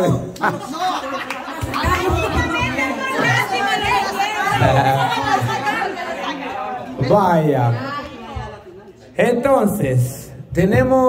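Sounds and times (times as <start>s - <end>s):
overlapping voices chattering: 0.0s - 10.6s.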